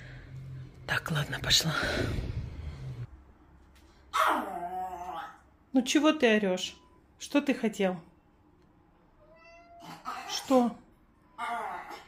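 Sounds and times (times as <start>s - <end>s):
cat meowing: 9.2s - 10.1s.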